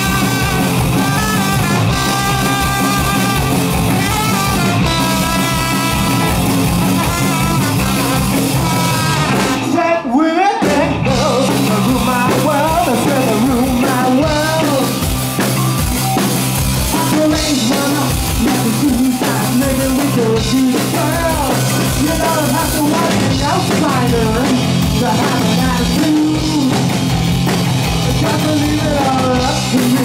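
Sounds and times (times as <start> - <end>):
trumpet lead line: 0.0 - 10.0
punk band playing: 0.0 - 30.0.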